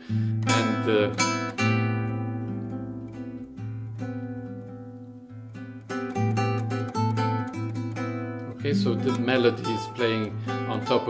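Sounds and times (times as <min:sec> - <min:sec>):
classical guitar chord ringing: 0:00.0 - 0:11.0
plucked guitar melody: 0:00.0 - 0:11.0.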